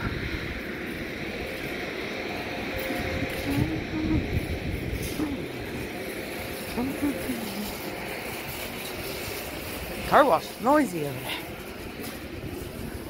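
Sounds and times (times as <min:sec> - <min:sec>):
low outdoor rumble: 0:00.0 - 0:13.0
faint low voices: 0:03.2 - 0:08.6.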